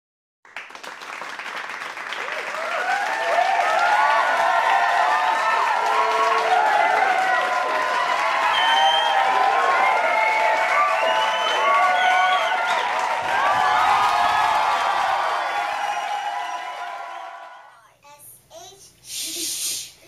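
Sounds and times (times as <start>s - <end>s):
children cheering and shouting: 2.6s - 17.6s.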